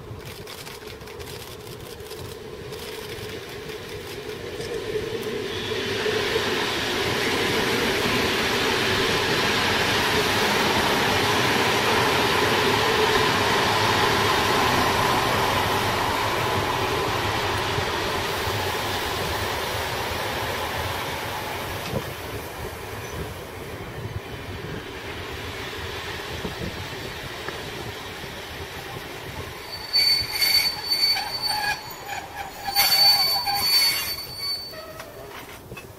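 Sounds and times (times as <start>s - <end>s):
electric train passing: 0.0s - 35.9s
high-pitched squeals and crackles: 29.6s - 35.5s.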